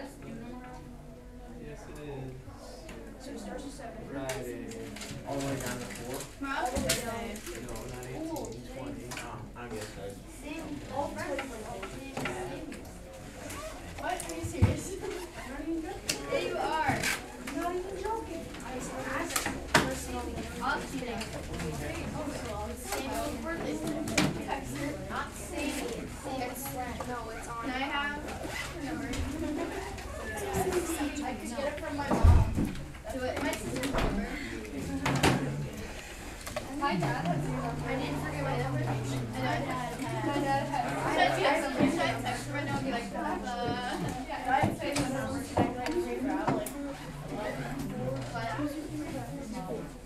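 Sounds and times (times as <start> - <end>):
students chattering: 0.0 - 50.0.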